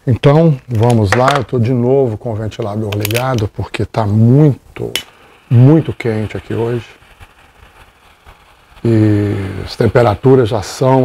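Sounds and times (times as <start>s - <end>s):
electric fan hiss: 0.0s - 11.0s.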